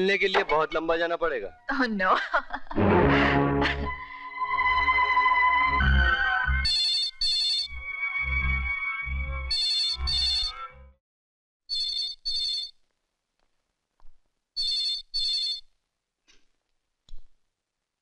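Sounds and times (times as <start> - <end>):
film score with low beats: 2.7 - 11.0.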